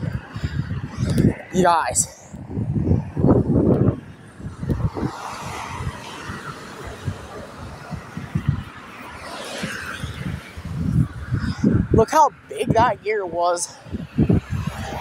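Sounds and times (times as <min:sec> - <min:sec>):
microphone thumps and rumbles: 0:00.0 - 0:05.9, 0:07.0 - 0:08.7
cars passing: 0:00.0 - 0:15.0.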